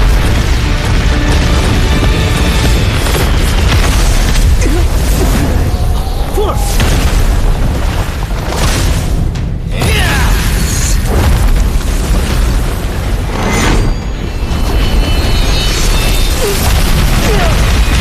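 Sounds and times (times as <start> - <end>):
booming explosions: 0.0 - 18.0.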